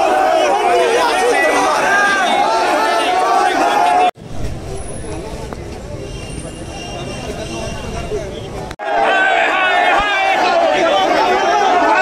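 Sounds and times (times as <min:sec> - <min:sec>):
crowd shouting: 0:00.0 - 0:04.2, 0:08.3 - 0:12.0
road traffic rumble: 0:00.0 - 0:08.8.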